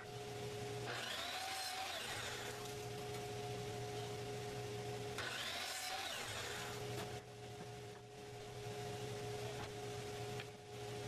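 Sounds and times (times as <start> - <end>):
miter saw cutting wood: 0.8 - 2.9, 5.2 - 7.0.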